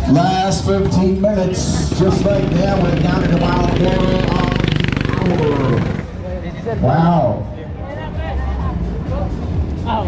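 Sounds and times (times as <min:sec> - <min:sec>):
go-kart engine running: 0:00.0 - 0:06.5.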